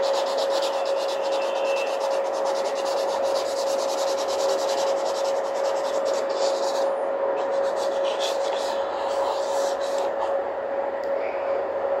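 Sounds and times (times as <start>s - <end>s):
pencil scratching on paper: 0.0s - 10.4s
steady hum: 0.0s - 12.0s.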